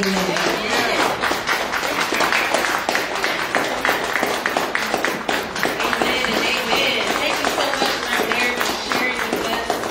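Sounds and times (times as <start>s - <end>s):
congregation applauding: 0.0s - 9.9s.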